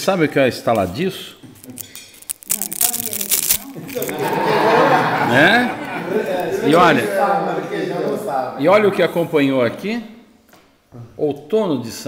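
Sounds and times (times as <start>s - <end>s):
crisp wafer crackling: 1.6s - 4.5s
voices talking: 2.6s - 9.6s.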